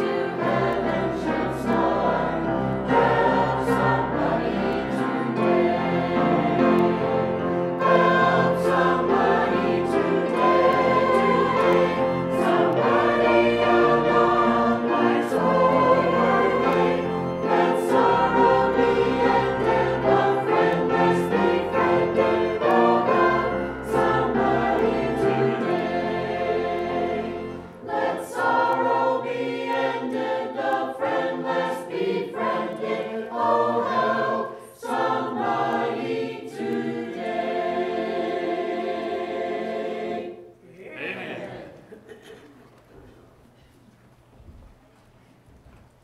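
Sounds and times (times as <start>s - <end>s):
instrumental accompaniment: 0.0s - 40.3s
choir singing a hymn: 0.0s - 42.4s.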